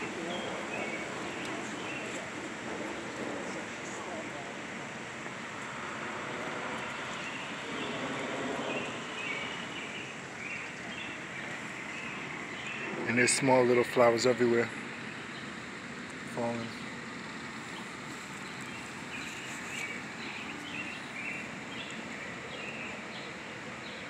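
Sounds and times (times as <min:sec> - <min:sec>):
outdoor background noise: 0:00.0 - 0:24.0.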